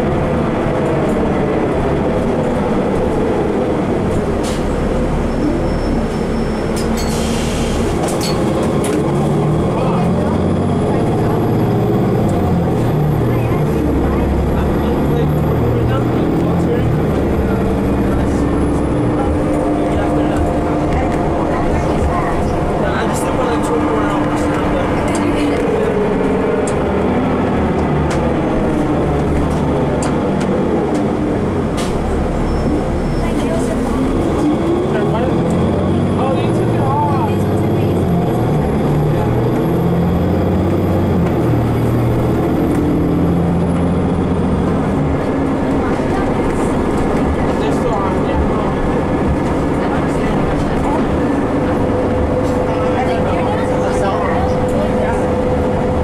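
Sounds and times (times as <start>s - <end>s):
bus diesel engine running: 0.0s - 56.0s.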